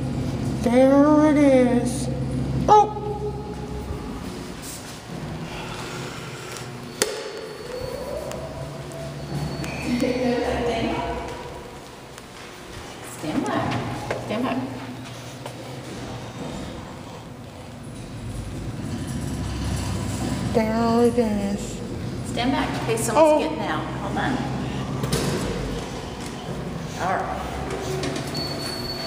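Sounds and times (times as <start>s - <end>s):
low hum: 0.0s - 28.2s
elevator doors sliding open: 7.4s - 11.6s, 17.7s - 29.0s.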